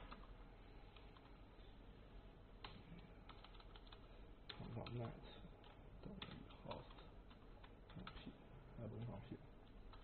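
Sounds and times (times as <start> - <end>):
low steady hum: 0.0 - 10.0
faint keyboard keystrokes: 2.6 - 10.0.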